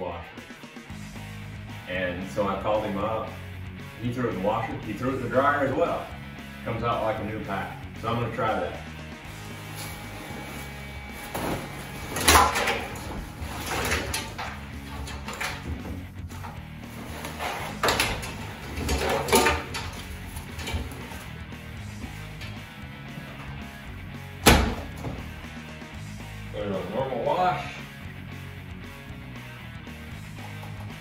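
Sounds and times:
background music: 0.0s - 31.0s
washing machine clunk: 11.3s - 16.5s, 17.3s - 21.3s, 24.4s - 25.4s.

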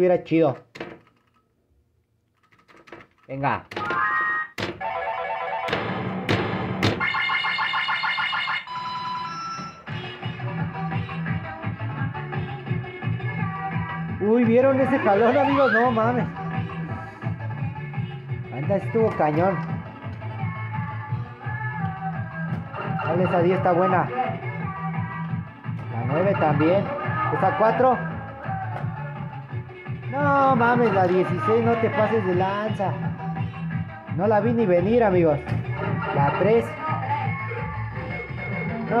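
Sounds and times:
music with repeating bass line: 9.6s - 39.0s.

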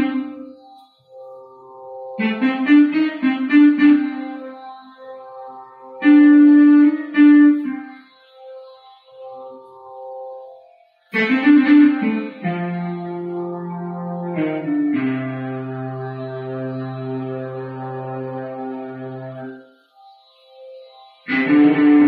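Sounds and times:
electronic keyboard melody: 0.0s - 22.0s.

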